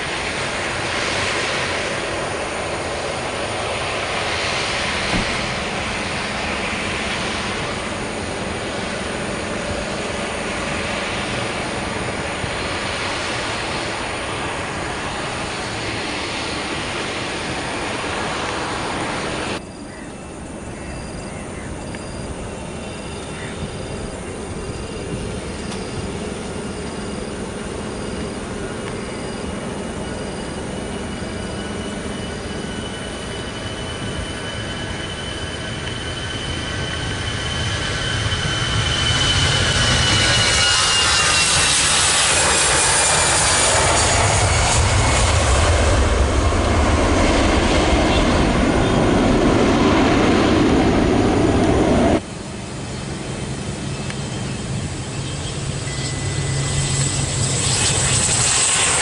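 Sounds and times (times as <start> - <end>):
jet engines whining: 0.0 - 59.0
turboprop engine hum: 0.0 - 59.0.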